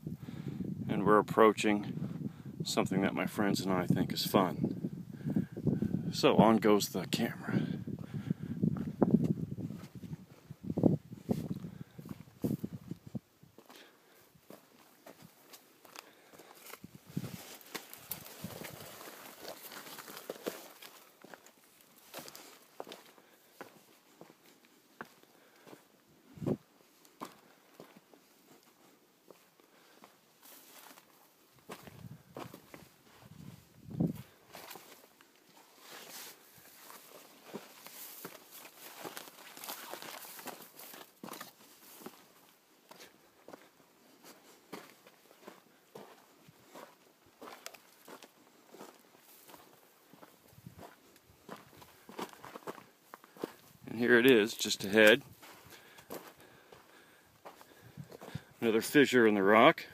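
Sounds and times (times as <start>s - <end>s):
footsteps on sand and gravel: 7.4s - 59.0s.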